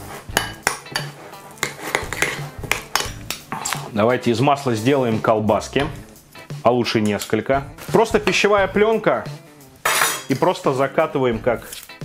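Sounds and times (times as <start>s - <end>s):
metal spoon clinking on glass bowl: 9.9s - 10.3s.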